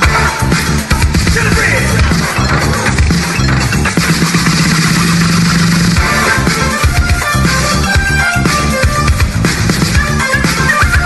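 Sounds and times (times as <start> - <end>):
dance music drum beat: 0.0 - 11.0.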